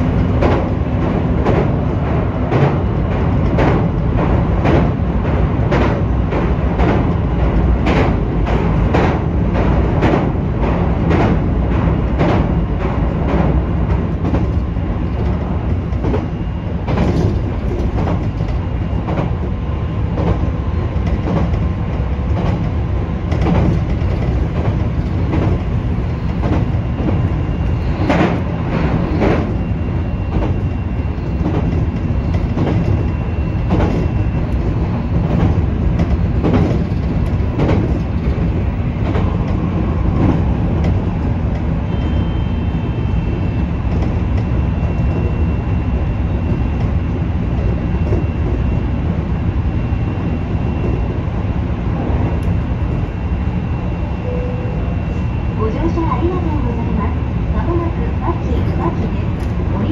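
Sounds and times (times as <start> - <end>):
train wheels rumbling on rail: 0.0 - 59.9
wheels clacking over rail joints: 30.3 - 41.8
faint high whine: 41.8 - 43.8, 47.9 - 58.0.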